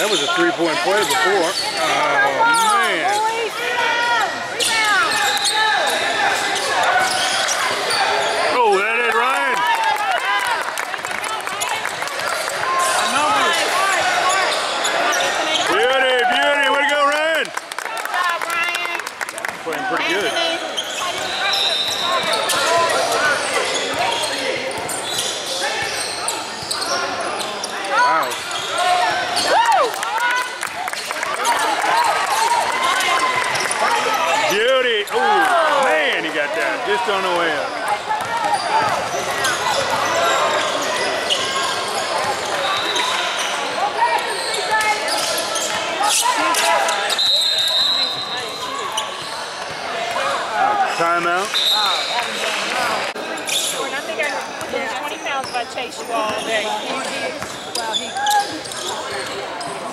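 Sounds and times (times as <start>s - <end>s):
sneakers squeaking: 0.0s - 3.5s, 4.1s - 8.6s, 11.5s - 15.8s, 20.0s - 29.6s, 31.0s - 35.9s, 37.1s - 59.9s
voices echoing in gym: 0.0s - 59.9s.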